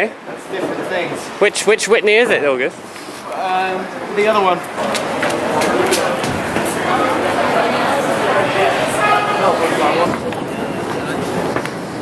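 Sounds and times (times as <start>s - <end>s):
city background noise: 0.0s - 12.0s
faint voices: 3.2s - 12.0s.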